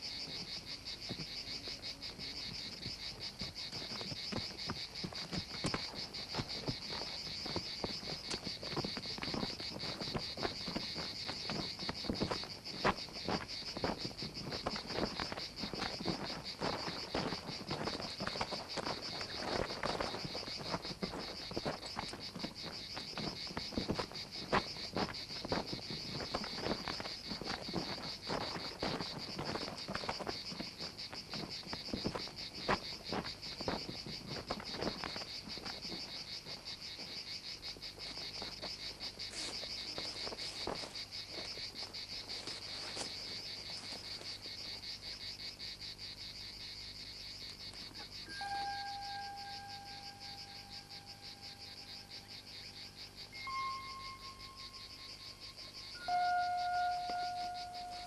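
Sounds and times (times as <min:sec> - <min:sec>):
insects chirring: 0:00.0 - 0:58.0
scuffs and thuds on dry ground: 0:02.4 - 0:46.4
whistle-like tone: 0:48.3 - 0:49.9, 0:53.4 - 0:54.4, 0:56.0 - 0:58.0.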